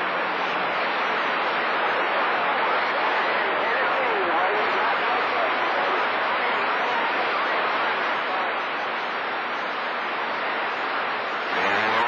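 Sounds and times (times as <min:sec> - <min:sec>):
faint distorted radio voices: 0:00.0 - 0:12.0
radio static hiss: 0:00.0 - 0:12.0.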